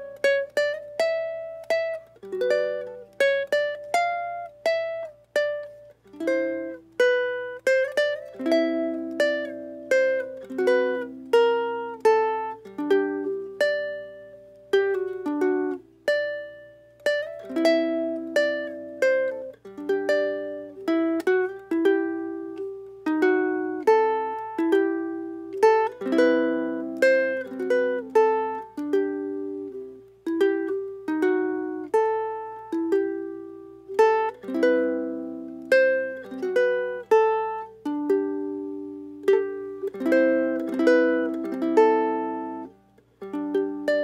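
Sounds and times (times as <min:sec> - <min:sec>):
ukulele played fingerstyle: 0:00.0 - 0:44.0.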